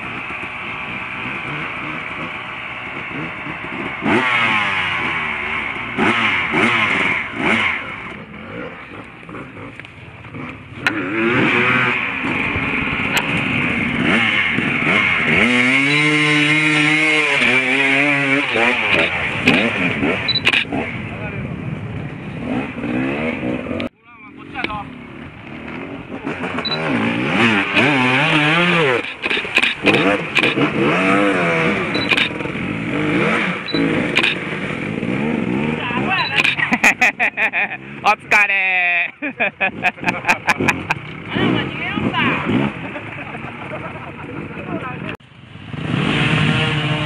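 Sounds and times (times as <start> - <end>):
motorcycle engines revving: 0.0 - 47.0
people's voices: 35.7 - 45.2.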